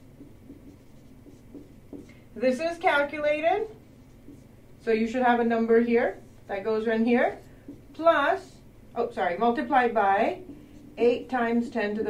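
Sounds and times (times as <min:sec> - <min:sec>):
low steady hum: 0:00.0 - 0:12.0
marker writing on whiteboard: 0:00.0 - 0:12.0.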